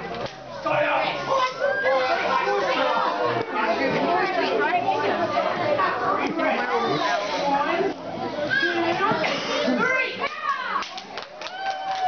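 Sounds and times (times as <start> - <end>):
audience chatter: 0.0 - 12.0.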